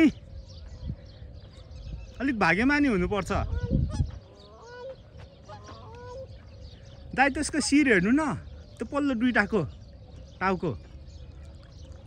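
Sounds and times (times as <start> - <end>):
goose honking: 3.3 - 6.4.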